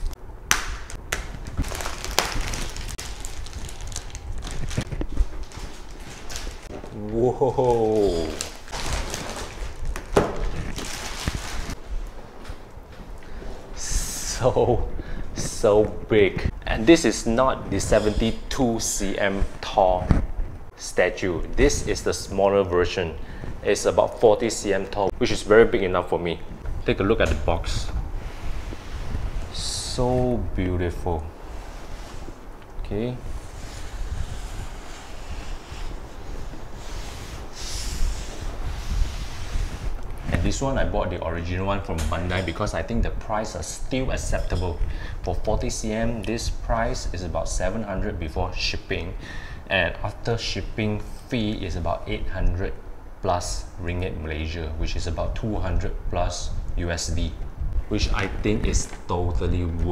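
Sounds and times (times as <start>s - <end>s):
plastic bag rustling: 0.9s - 12.0s.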